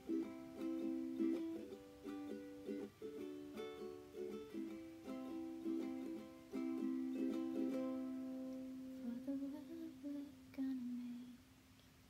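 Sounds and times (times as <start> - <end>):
ukulele strummed chord: 0.0 - 9.3
person humming: 9.0 - 11.4.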